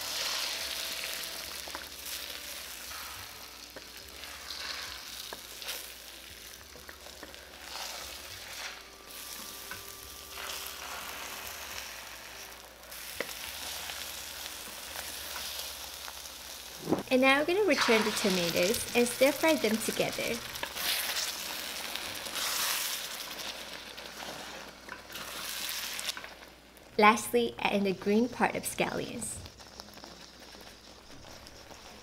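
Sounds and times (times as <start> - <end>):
spatula scraping wok: 0.0 - 26.4, 27.8 - 32.0
eggs sizzling in hot oil: 0.0 - 32.0.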